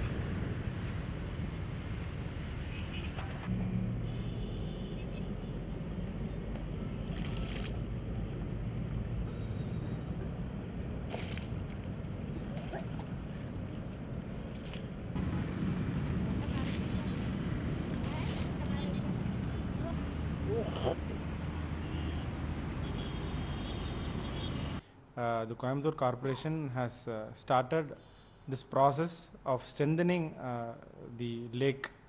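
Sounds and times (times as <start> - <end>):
outdoor background rumble: 0.0 - 24.8.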